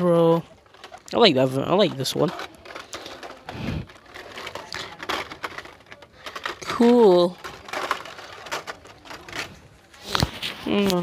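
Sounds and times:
plastic and card packages clicking: 0.4 - 11.0.

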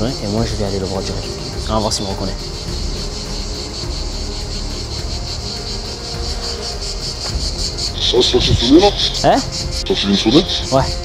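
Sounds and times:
cicadas buzzing: 0.0 - 11.0.

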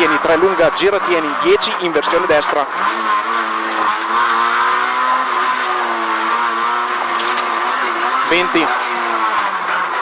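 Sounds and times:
car engine revving from inside: 2.8 - 10.0.

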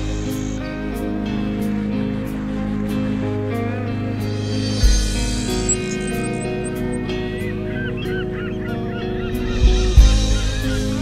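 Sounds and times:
background music: 0.0 - 11.0
short bird calls: 4.9 - 11.0.

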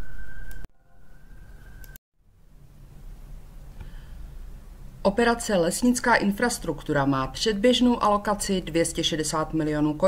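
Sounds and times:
low hum and hiss: 1.2 - 10.0.

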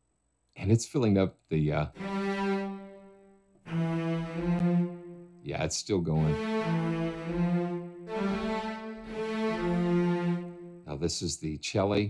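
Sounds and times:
cello sustained bowed notes: 1.9 - 11.1.

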